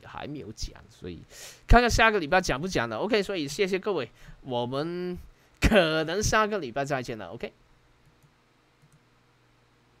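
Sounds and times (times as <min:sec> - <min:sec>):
computer mouse clicks: 0:08.0 - 0:09.1.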